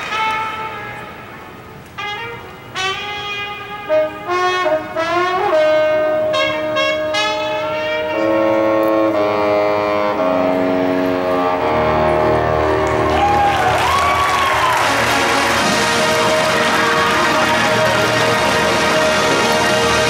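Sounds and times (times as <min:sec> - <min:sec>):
marching band brass: 0:00.0 - 0:20.0.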